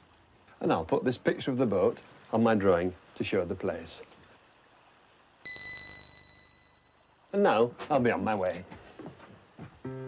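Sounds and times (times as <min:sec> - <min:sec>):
high clear bell ding: 0:05.5 - 0:07.4.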